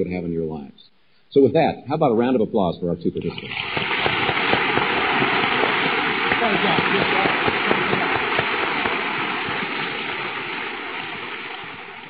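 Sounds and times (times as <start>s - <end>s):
audience applauding: 3.4s - 12.0s.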